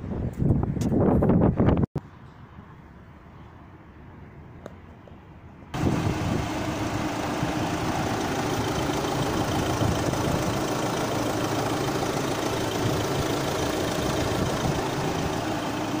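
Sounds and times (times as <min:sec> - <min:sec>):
diesel engine idling: 0:05.8 - 0:16.0.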